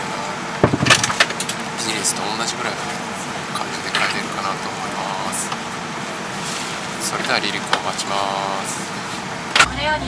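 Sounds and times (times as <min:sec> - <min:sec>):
airliner cabin noise: 0:00.0 - 0:10.0.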